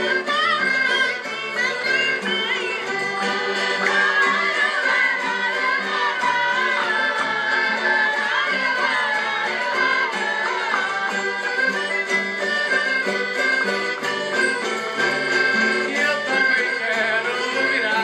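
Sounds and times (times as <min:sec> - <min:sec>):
folk band playing: 0:00.0 - 0:18.0
voices singing along: 0:00.0 - 0:18.0.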